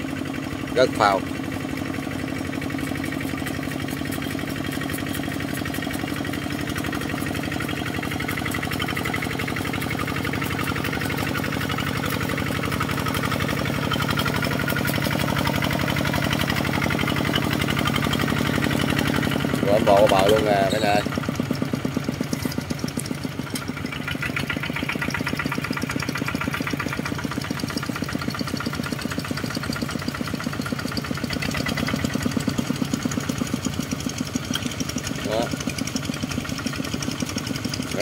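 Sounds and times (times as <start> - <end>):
walking tractor diesel engine: 0.0 - 38.0.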